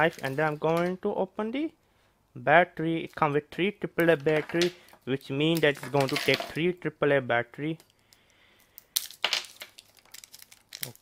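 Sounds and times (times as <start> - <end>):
plastic rustling: 0.0 - 1.0, 8.6 - 11.0
plastic shrink-wrap tearing: 8.8 - 11.0.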